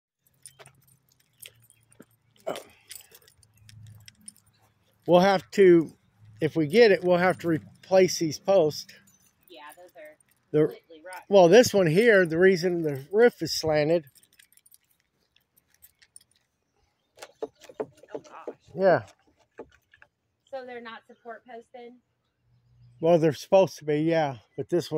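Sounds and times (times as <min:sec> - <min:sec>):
keys jangling: 0:00.2 - 0:18.4
light clicks and clinks: 0:00.2 - 0:20.2.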